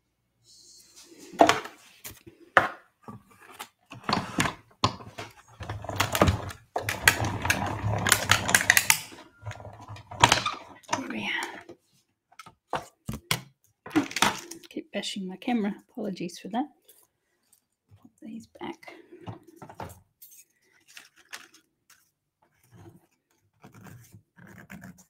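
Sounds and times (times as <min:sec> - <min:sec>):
machine rolling noise: 0:05.6 - 0:10.8
die-cutting machine clicks and clatter: 0:05.9 - 0:09.6.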